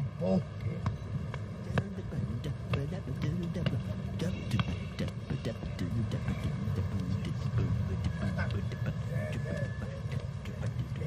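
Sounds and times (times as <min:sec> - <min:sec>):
faint indistinct voices: 0:00.0 - 0:11.0
low traffic rumble: 0:00.0 - 0:11.0.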